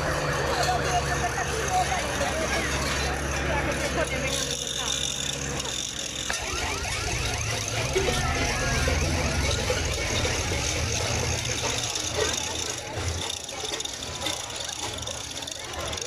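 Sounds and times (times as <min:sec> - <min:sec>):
crowd chatter: 0:00.0 - 0:16.0
vehicle engine hum: 0:00.0 - 0:16.0.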